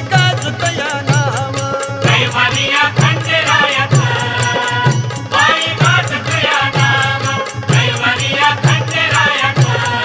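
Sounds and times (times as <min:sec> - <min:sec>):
percussion beat with low drum: 0:00.0 - 0:10.0
person singing devotional song: 0:00.0 - 0:10.0.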